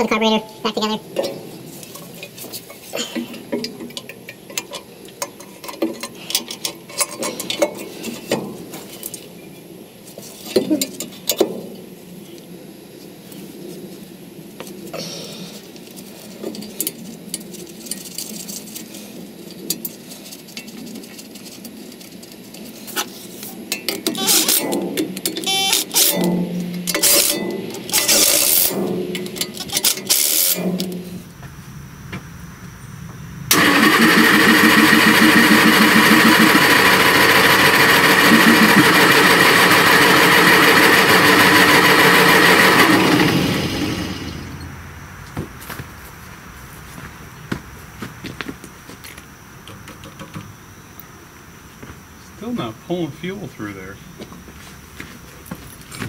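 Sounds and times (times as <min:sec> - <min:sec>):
small gasoline engine starting and running: 0:24.1 - 0:31.1, 0:33.5 - 0:44.8.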